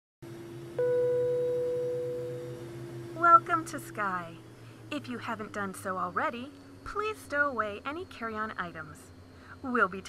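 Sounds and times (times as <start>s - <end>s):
low cabin drone hum: 0.2s - 10.0s
cabin chime ding: 0.8s - 2.8s.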